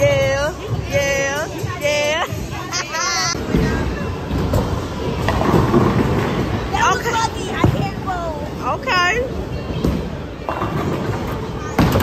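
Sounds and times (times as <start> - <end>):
bowling balls rolling on lanes: 3.3 - 12.0.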